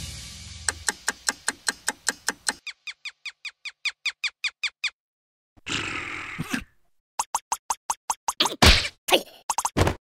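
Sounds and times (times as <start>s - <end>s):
cartoon clock ticking: 0.7s - 2.7s.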